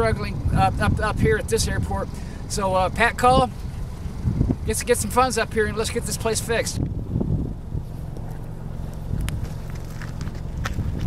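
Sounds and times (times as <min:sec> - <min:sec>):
wind rumble on microphone: 0:00.0 - 0:11.0
footsteps on gravel: 0:08.0 - 0:11.0.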